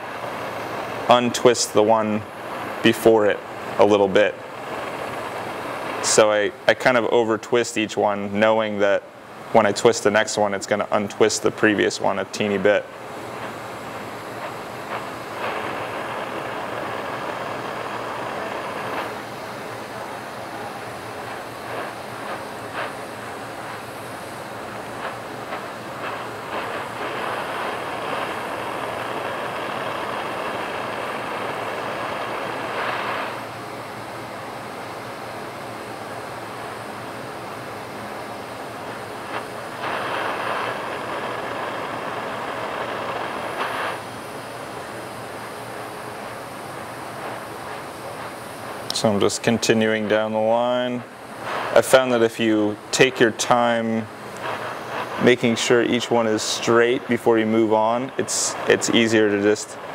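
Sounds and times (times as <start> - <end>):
torch flame rushing hiss: 0.0 - 59.9.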